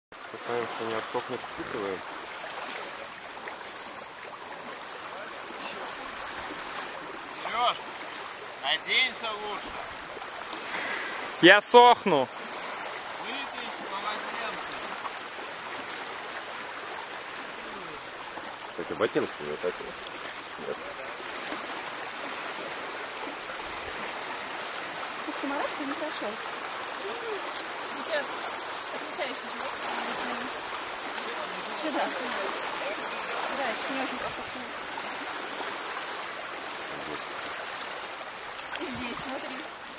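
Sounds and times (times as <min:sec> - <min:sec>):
shallow river flowing: 0:00.1 - 0:39.9
person speaking: 0:11.4 - 0:12.3.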